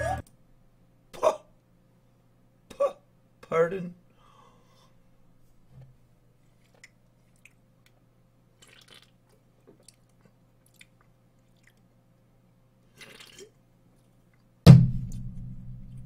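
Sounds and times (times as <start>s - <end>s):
sipping and swallowing: 8.6s - 11.9s, 12.9s - 14.2s
loud boom with low rumble: 14.7s - 16.0s.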